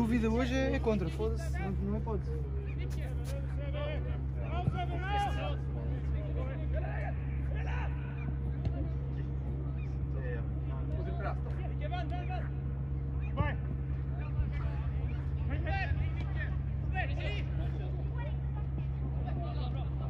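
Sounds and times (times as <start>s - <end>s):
people shouting and calling out: 0.0s - 20.0s
steady low hum: 0.0s - 20.0s.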